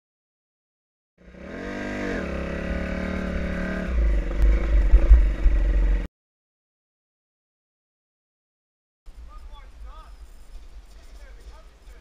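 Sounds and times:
dirt bike engine: 1.2s - 6.1s
loud low rumble and clattering: 2.4s - 6.1s.

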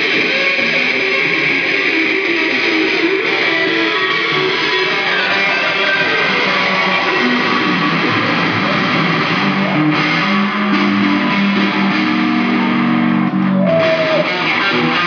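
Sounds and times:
amplified electric guitar: 0.0s - 15.0s.

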